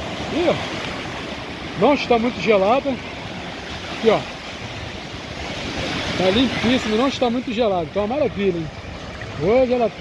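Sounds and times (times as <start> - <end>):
small waves breaking on sand: 0.0 - 10.0.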